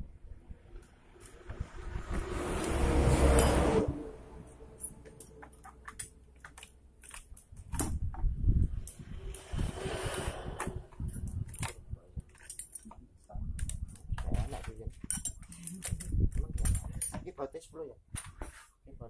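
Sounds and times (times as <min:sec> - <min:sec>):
metal parts clinking and rattling: 0:04.8 - 0:08.0, 0:11.2 - 0:17.3
rustling scrape: 0:08.9 - 0:11.6, 0:18.3 - 0:18.8.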